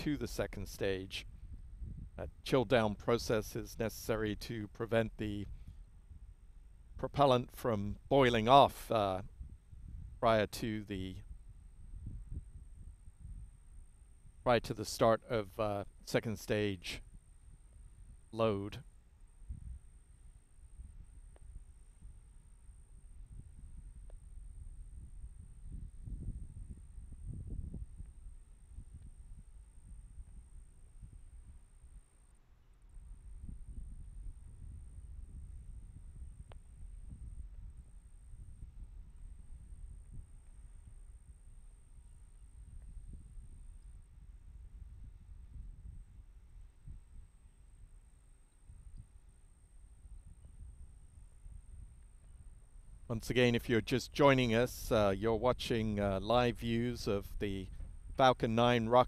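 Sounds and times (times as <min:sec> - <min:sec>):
wind buffeting microphone: 0:00.0 - 0:10.3, 0:11.0 - 0:14.5, 0:16.8 - 0:32.0, 0:32.8 - 0:48.0, 0:50.0 - 0:59.0
faint high-pitched whine: 0:00.0 - 0:59.0.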